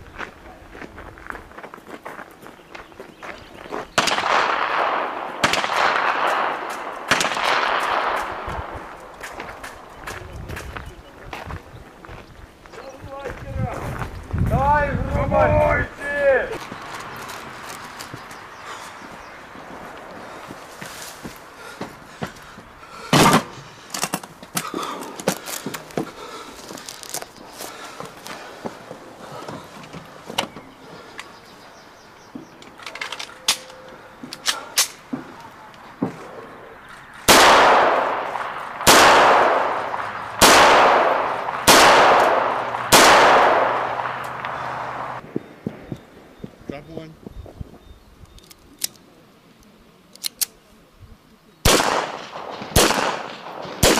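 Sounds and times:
pistol shots echoing: 4.0s - 9.1s, 37.2s - 45.2s, 51.6s - 53.9s.

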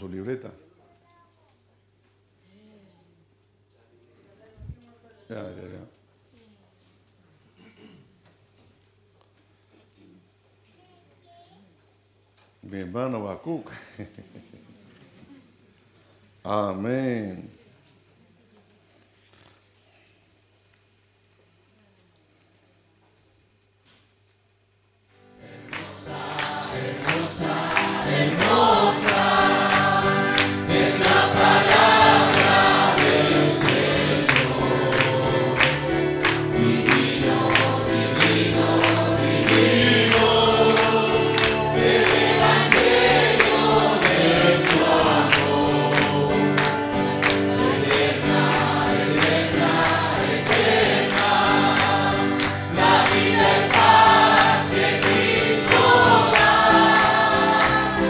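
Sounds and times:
congregation singing a hymn: 25.2s - 58.0s
hands clapping steady beat: 25.5s - 58.0s.

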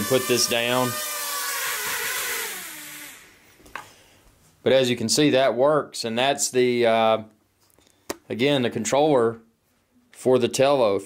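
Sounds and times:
drone propellers whirring: 0.0s - 3.3s.

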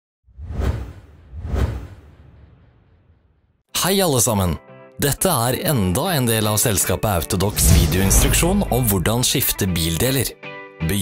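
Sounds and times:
whoosh sound effects: 7.4s - 9.4s
heavy low rumble: 7.5s - 9.5s.

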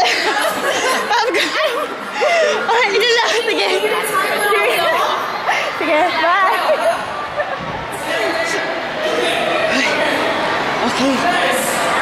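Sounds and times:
people chattering indoors: 0.0s - 12.0s.

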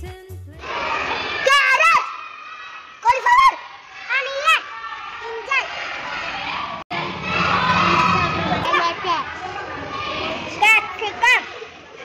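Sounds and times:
children chattering and calling out: 0.6s - 12.0s.

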